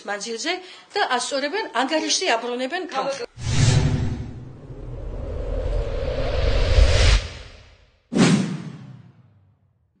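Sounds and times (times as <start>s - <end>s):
whoosh sound effect: 3.4s - 8.7s.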